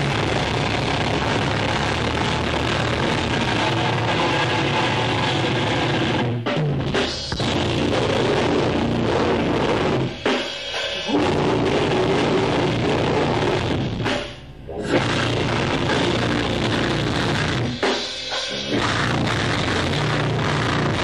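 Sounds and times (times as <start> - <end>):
loud rock band playing: 0.0 - 21.0.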